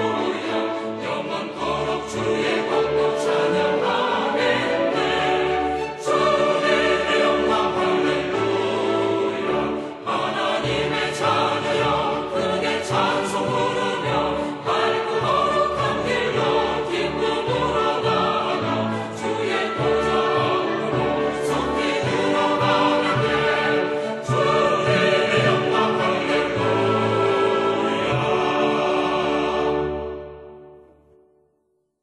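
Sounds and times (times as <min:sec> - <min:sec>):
choir singing: 0:00.0 - 0:31.1.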